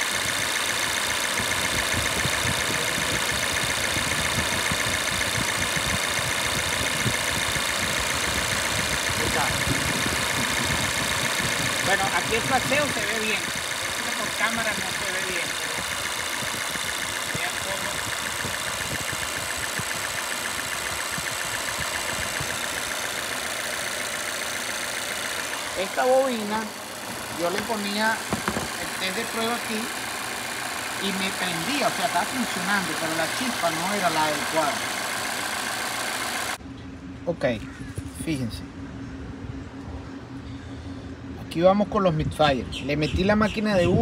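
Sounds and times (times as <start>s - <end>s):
fast even engine ticking: 0.0s - 36.6s
car engine idling: 0.0s - 41.8s.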